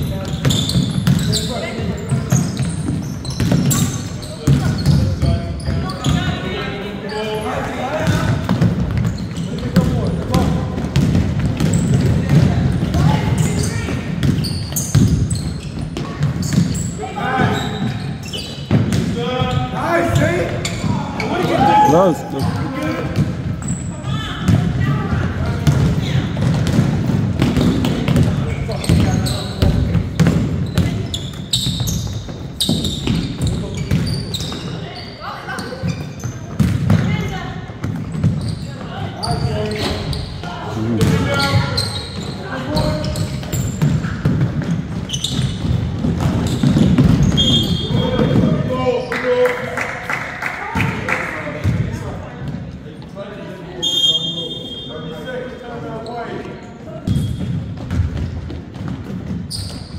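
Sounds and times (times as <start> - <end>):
basketball bouncing on wooden floor: 2.1 - 6.2, 8.0 - 16.8, 24.4 - 34.7, 43.1 - 48.5, 57.1 - 59.9.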